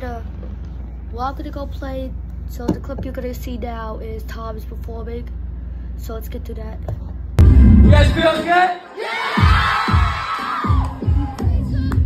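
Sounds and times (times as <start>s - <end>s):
crowd shouting: 8.8s - 11.4s
kick drum beating: 9.4s - 12.0s.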